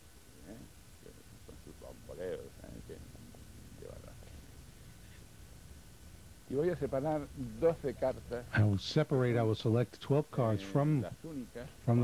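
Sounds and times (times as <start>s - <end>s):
low hum and rumble: 0.0s - 12.0s
soft vocal murmur: 0.3s - 4.3s.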